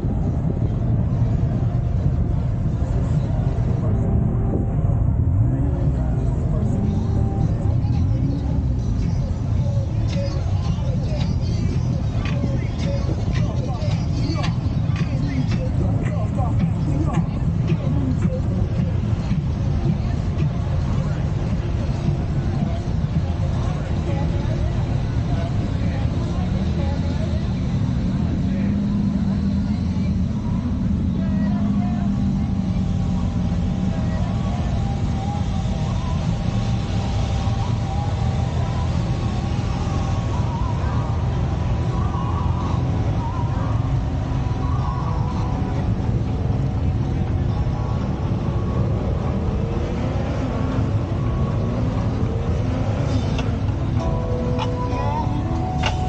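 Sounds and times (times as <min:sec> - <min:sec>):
people talking: 0:00.0 - 0:56.0
vehicle engines rumbling: 0:00.0 - 0:56.0.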